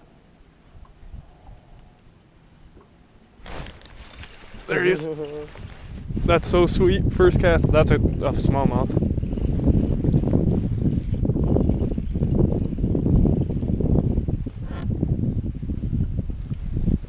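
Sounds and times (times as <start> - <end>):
wind buffeting microphone: 3.5 - 17.0.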